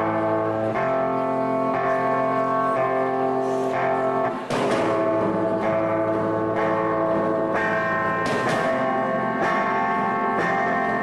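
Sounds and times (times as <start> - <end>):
rock band playing ringing chords: 0.0 - 11.0.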